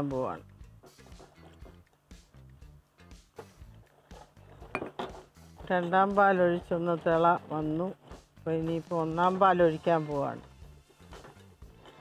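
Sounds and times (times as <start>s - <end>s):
person speaking: 0.0s - 0.4s, 5.6s - 10.4s.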